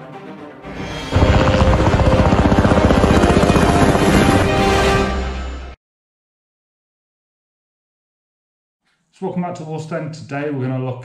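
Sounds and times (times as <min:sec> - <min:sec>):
helicopter rotors beating: 0:01.1 - 0:05.5.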